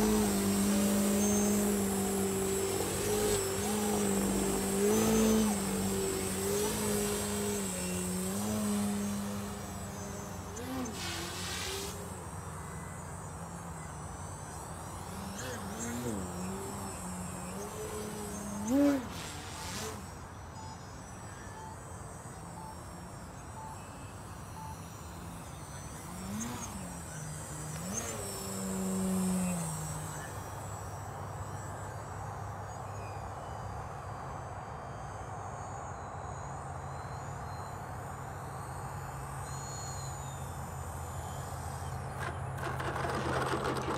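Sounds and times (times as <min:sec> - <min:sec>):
model plane engine in flight: 0:00.0 - 0:43.9.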